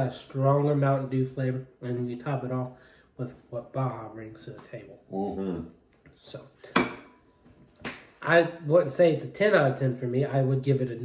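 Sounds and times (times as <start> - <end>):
glass clinking on wooden table: 6.7 - 7.3.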